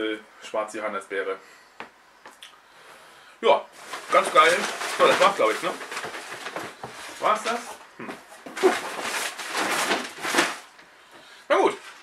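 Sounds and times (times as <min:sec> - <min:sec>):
cardboard box rustling and scraping: 0:08.4 - 0:10.6.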